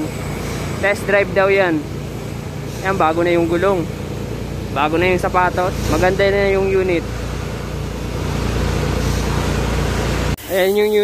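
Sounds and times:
diesel truck engine running: 0:00.0 - 0:10.4.

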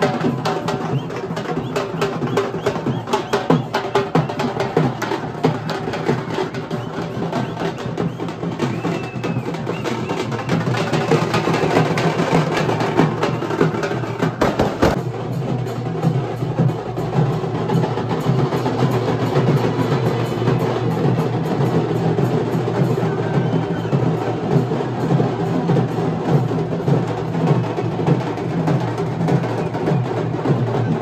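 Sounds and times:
street drums beating fast rhythm: 0:00.0 - 0:31.0.

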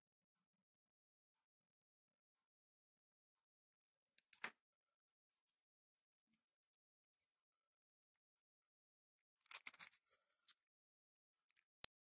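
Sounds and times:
small clicks and scrapes on metal shaft: 0:09.5 - 0:10.6.

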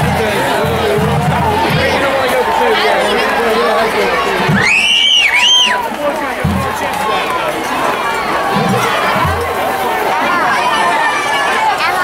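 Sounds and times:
football crowd shouting and cheering: 0:00.0 - 0:12.0.

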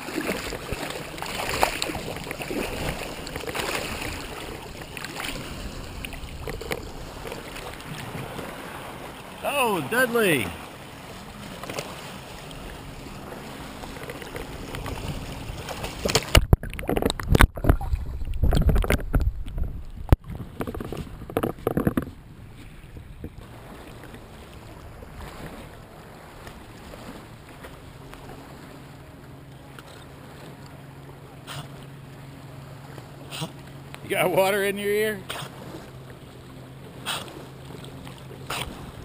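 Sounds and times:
lake water splashing: 0:00.0 - 0:39.0
water lapping gently: 0:00.0 - 0:39.0.

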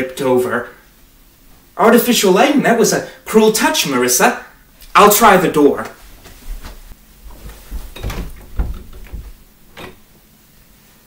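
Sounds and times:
footsteps thumping: 0:05.8 - 0:10.1
door knob rattling: 0:07.3 - 0:10.1.

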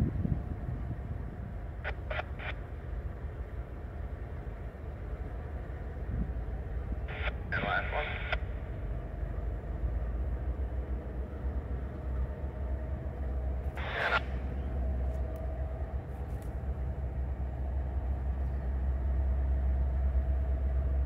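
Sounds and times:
diesel locomotives rumbling: 0:00.0 - 0:21.0
voice over a radio: 0:01.8 - 0:02.6, 0:07.1 - 0:08.5, 0:13.7 - 0:14.4.

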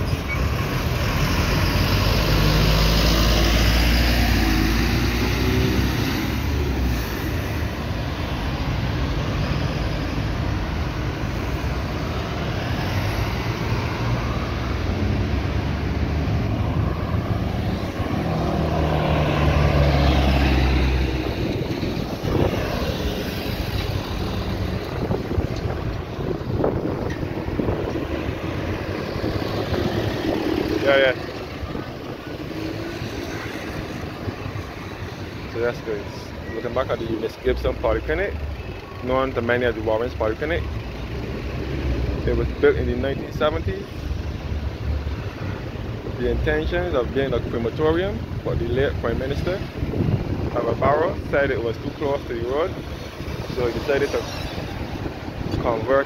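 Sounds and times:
bus engine rumble: 0:00.0 - 0:56.0
cars passing: 0:00.0 - 0:56.0.

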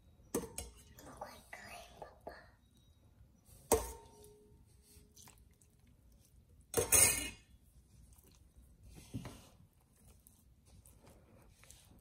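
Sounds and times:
faint whispering voice: 0:00.8 - 0:02.8.

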